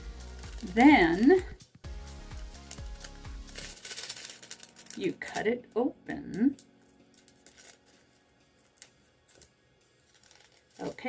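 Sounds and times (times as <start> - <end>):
plastic packet crinkling: 0.0 - 1.5, 2.2 - 11.0
background music: 0.0 - 11.0
small beads clicking and rattling: 0.1 - 0.9, 2.2 - 5.5, 6.5 - 11.0.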